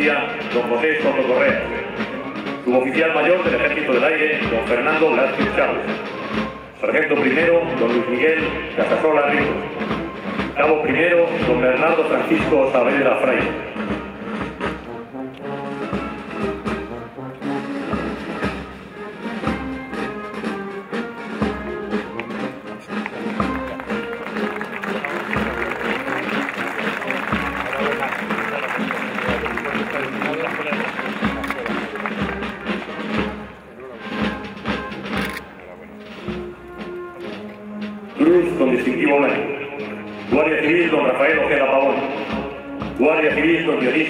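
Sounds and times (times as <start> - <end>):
brass band music: 0.0 - 44.0.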